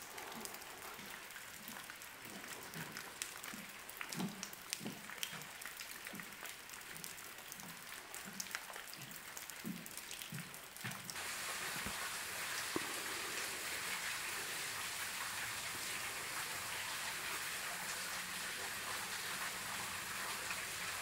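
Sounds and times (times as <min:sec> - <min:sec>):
faint steady hiss: 0:11.1 - 0:21.0.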